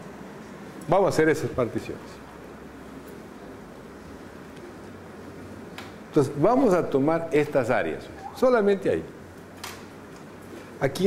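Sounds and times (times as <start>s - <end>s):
steady low hum: 0.0s - 10.9s.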